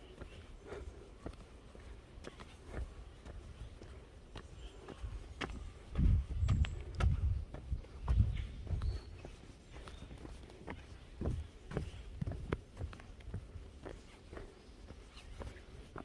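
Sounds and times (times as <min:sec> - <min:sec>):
footsteps on dirt trail: 0:00.0 - 0:16.0.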